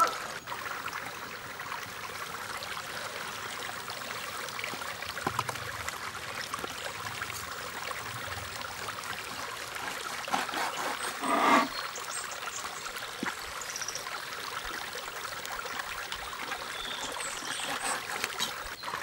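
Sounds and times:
wooden spoon stirring pot: 0:09.8 - 0:11.7, 0:17.3 - 0:18.7.

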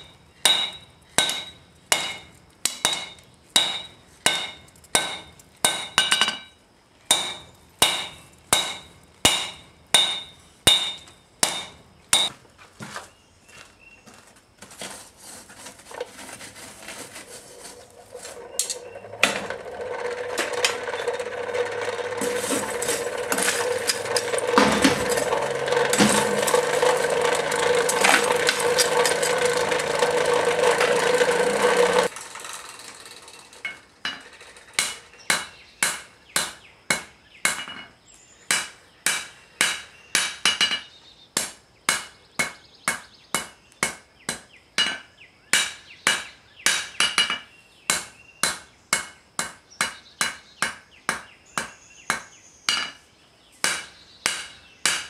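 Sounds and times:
hammer forging steel on anvil: 0:00.0 - 0:06.5, 0:07.1 - 0:12.3, 0:18.5 - 0:32.1, 0:33.6 - 0:37.9, 0:38.5 - 0:40.8, 0:41.4 - 0:53.0, 0:53.6 - 0:55.0.

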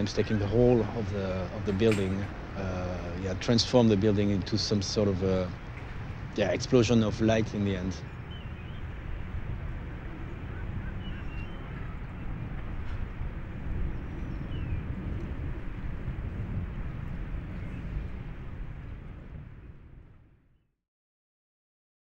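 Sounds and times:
low outdoor rumble: 0:00.0 - 0:20.4.

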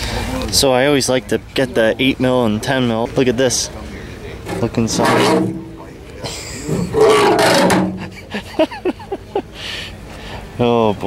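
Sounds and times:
man laughing: 0:06.2 - 0:07.0, 0:07.9 - 0:09.7.

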